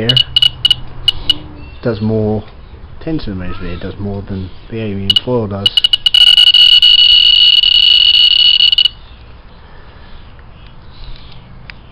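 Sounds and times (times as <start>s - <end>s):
rapid high beeps of a counter: 0.0s - 1.4s, 5.1s - 9.0s.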